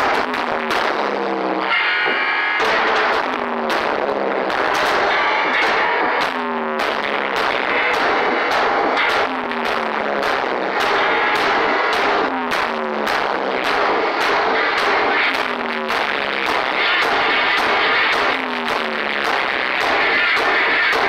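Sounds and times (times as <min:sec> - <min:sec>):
distorted electric guitar noise drone: 0:00.0 - 0:21.0.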